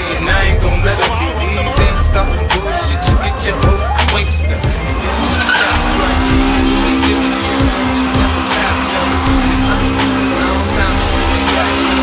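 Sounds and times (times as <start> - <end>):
car engine at high revs: 0.0 - 12.0
tyres skidding: 0.0 - 12.0.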